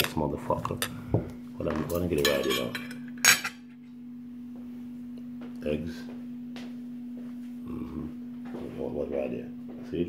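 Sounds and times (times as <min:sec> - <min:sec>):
steady low hum: 0:00.0 - 0:10.0
cutlery clinking on plate: 0:02.1 - 0:03.6.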